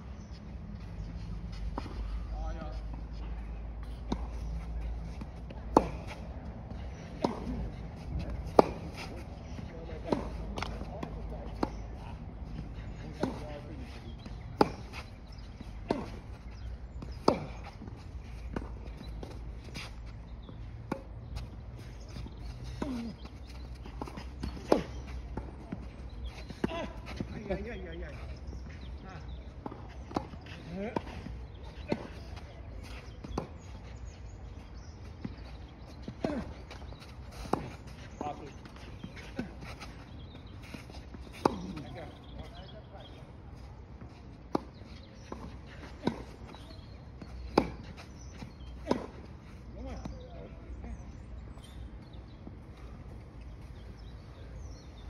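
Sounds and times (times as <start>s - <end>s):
footsteps on court: 0.2s - 55.0s
racket hitting tennis ball: 5.0s - 6.2s, 7.1s - 9.3s, 45.3s - 48.0s, 48.8s - 49.2s.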